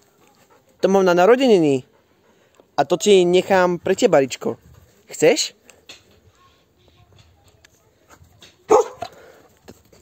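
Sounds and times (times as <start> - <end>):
dog barking: 8.7 - 9.1.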